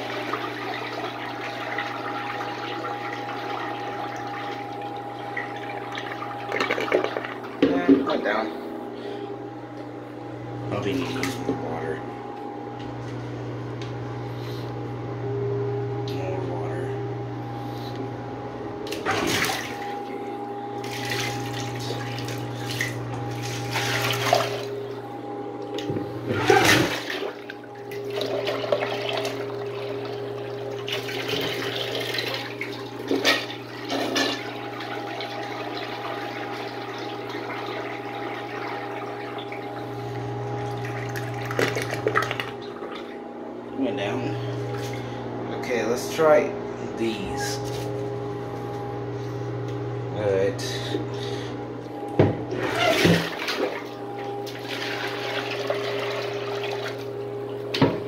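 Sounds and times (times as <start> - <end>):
steady hum: 0.0 - 58.0
water running and splashing: 20.8 - 24.7.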